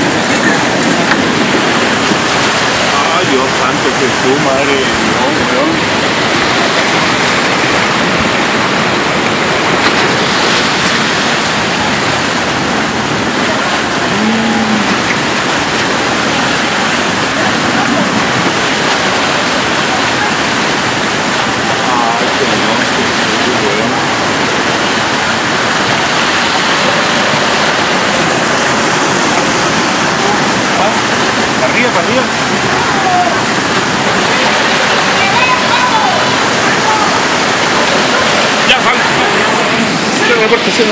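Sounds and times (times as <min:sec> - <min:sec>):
floodwater roaring: 0:00.0 - 0:40.9.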